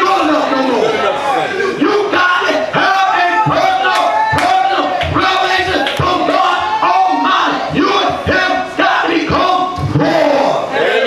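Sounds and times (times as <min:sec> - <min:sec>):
man shouting into a microphone: 0:00.0 - 0:10.8.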